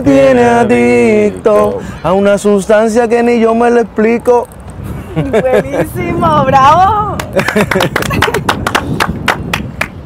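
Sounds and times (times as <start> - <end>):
people clapping: 7.1 - 10.0.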